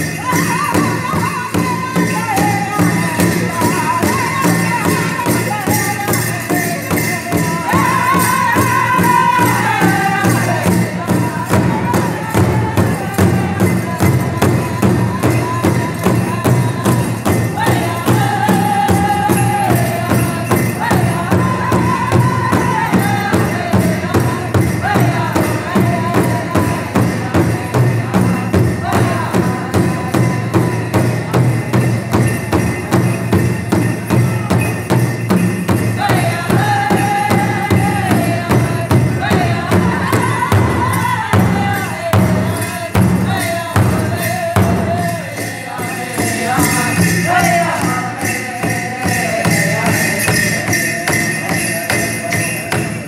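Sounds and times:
large drum struck steadily: 0.0s - 45.3s
singers' voices: 0.0s - 53.0s.

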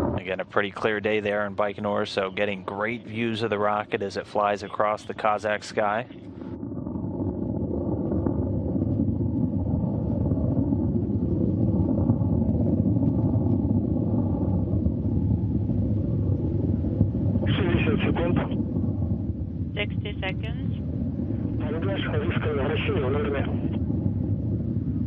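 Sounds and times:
distant rocket engine rumble: 0.0s - 25.0s.

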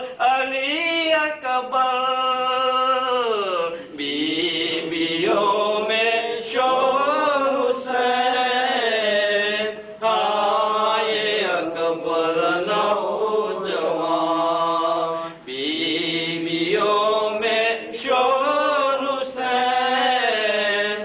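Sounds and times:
man chanting unaccompanied: 0.0s - 21.0s.

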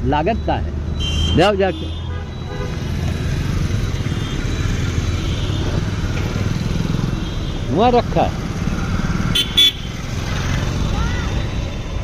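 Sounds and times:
engine and road rumble: 0.0s - 12.0s
faint car horns tooting: 1.0s - 2.9s, 9.3s - 10.0s.

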